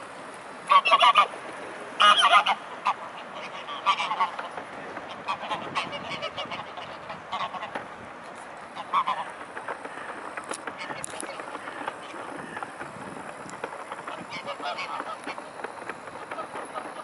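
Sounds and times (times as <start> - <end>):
waterfowl nasal calls: 0.7 - 1.3, 2.0 - 7.7, 8.8 - 10.2, 10.8 - 12.8, 14.1 - 17.0.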